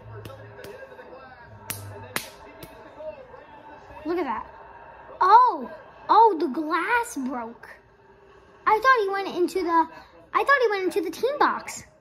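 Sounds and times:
tv music: 0:00.0 - 0:12.0
tv voices: 0:00.0 - 0:12.0
sharp cracks: 0:01.7 - 0:02.8.

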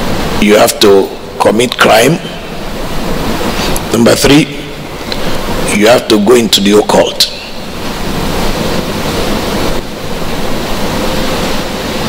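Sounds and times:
room noise hiss: 0:00.0 - 0:12.0
man speaking: 0:00.4 - 0:02.5, 0:03.8 - 0:04.9, 0:05.6 - 0:07.6.

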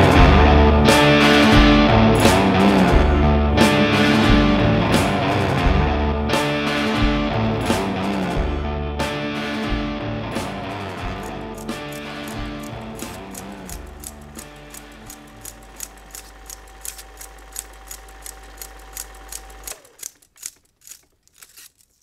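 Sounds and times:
guitar chords: 0:00.0 - 0:18.6
film projector humming and clicking: 0:11.2 - 0:20.6.

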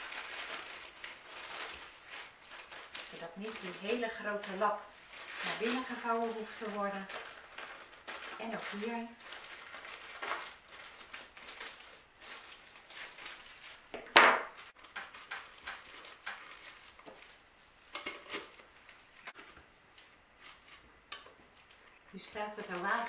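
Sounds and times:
plastic bag rustling: 0:00.0 - 0:23.0.

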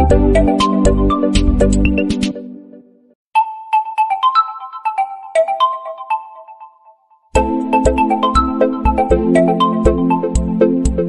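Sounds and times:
bell-like phone ringtone: 0:03.4 - 0:07.2.

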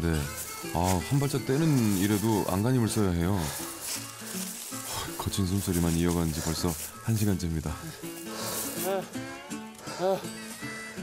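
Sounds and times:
background music with held notes: 0:00.0 - 0:11.0
man gasping out of breath: 0:09.8 - 0:10.4.

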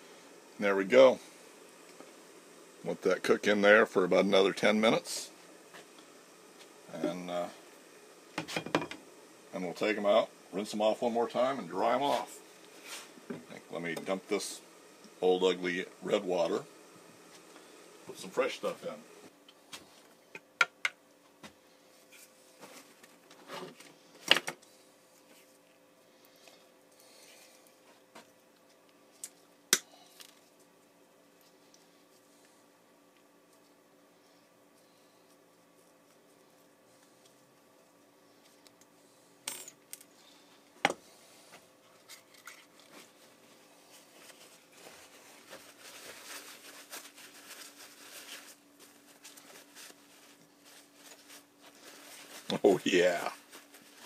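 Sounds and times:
paper towel rustling: 0:42.7 - 0:54.0.

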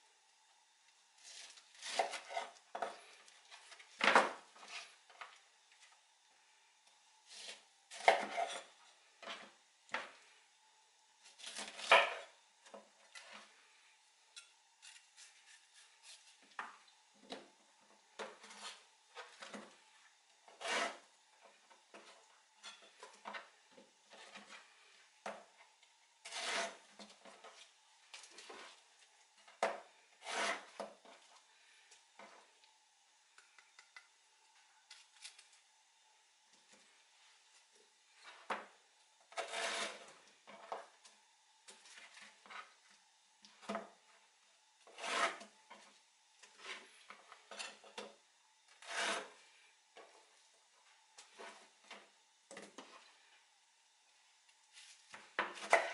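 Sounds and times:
knife slicing pineapple on board: 0:01.4 - 0:02.9
knife cutting on wooden board: 0:20.6 - 0:21.0, 0:26.3 - 0:26.8, 0:30.2 - 0:30.8, 0:39.4 - 0:40.1, 0:44.9 - 0:45.5
knife rasping stroke: 0:26.2 - 0:26.8, 0:30.2 - 0:30.8, 0:44.9 - 0:45.5, 0:48.8 - 0:49.4.

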